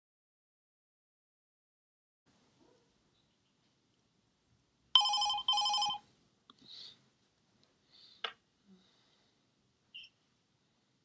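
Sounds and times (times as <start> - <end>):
warbling electronic ringtone: 5.0 - 6.0.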